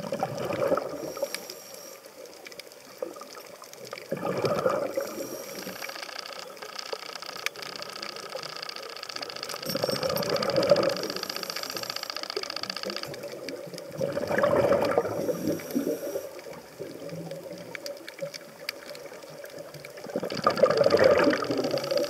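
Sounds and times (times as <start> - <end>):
exhaled bubbles bursting: 0.0 - 1.3, 3.9 - 5.3, 9.8 - 11.2, 12.8 - 22.0
regulator hiss: 0.9 - 2.3, 4.9 - 13.4, 15.1 - 16.8, 21.2 - 22.0.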